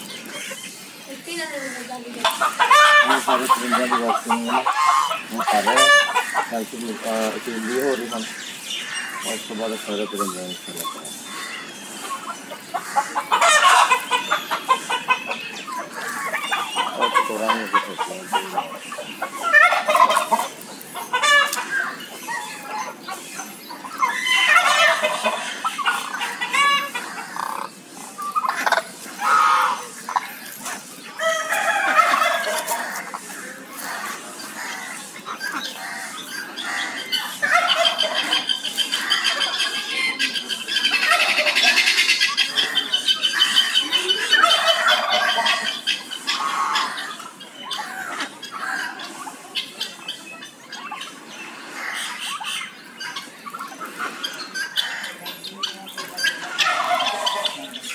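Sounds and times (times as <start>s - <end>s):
chickens clucking and squawking: 0.0s - 57.9s
fast rattling bird calls: 0.0s - 57.9s.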